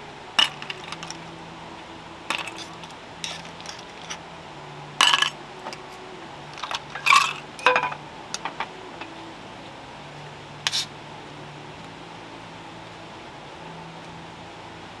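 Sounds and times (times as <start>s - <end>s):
metal cookware clinking: 6.6s - 8.0s.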